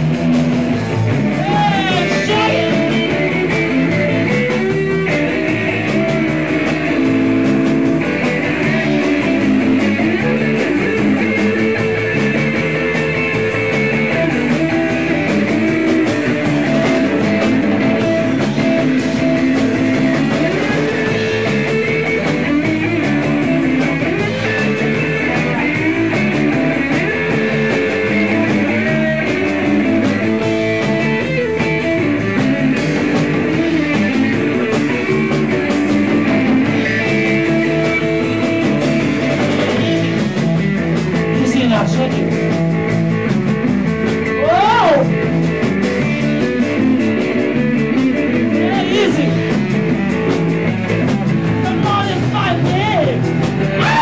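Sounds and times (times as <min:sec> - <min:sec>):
drum kit: 0:00.0 - 0:54.0
electric guitar: 0:00.0 - 0:54.0.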